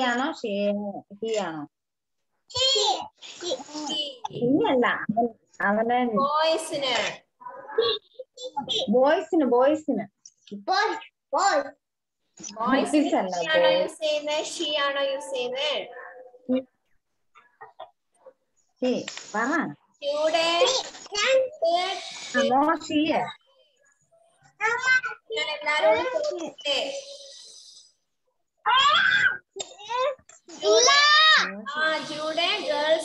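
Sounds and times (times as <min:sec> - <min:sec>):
high-pitched rising vocal cry: 0:28.7 - 0:29.4.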